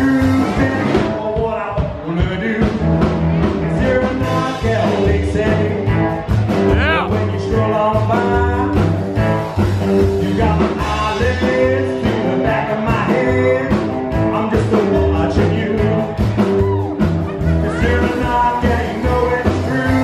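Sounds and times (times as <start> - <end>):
person singing: 0.0 - 9.4, 10.0 - 20.0
drum kit: 0.0 - 20.0
electric guitar: 0.0 - 20.0
upright bass: 0.0 - 20.0.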